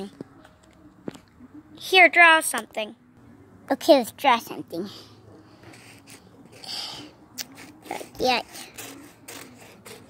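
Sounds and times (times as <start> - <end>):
marker scratching on wood: 5.6 - 6.8, 7.4 - 10.0.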